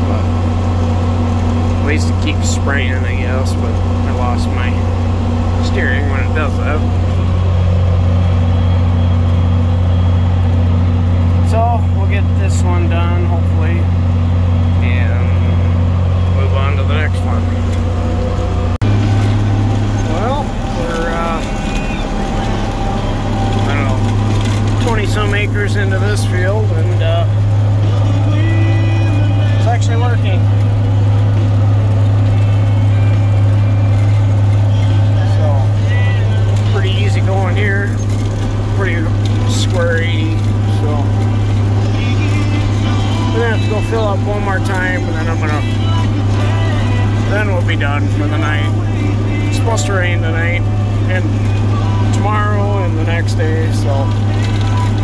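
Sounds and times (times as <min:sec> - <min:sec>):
tractor engine droning: 0:00.0 - 0:55.0.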